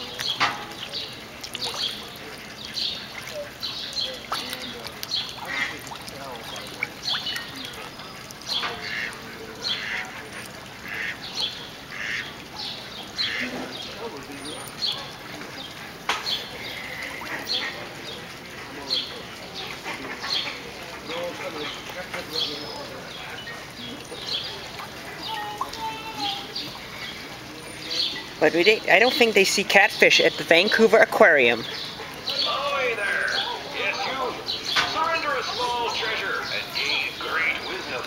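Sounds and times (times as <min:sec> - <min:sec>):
ducks quacking: 0:01.6 - 0:14.3, 0:26.1 - 0:38.0.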